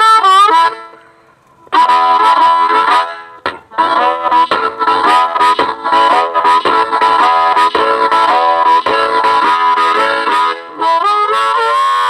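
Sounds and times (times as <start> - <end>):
blues harmonica through amp: 0.0 - 12.0.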